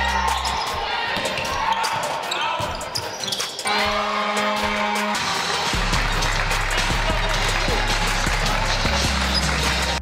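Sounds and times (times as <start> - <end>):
sneakers squeaking: 0.0 - 4.0
crowd and player voices: 0.0 - 10.0
music with low bass: 4.7 - 10.0.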